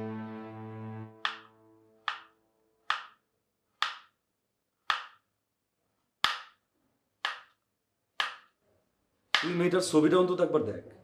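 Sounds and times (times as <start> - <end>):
knife chopping on wooden board: 1.2 - 1.5, 2.1 - 2.3, 2.9 - 3.2, 3.8 - 4.2, 4.8 - 5.2, 6.2 - 6.6, 7.2 - 7.6, 8.2 - 8.5.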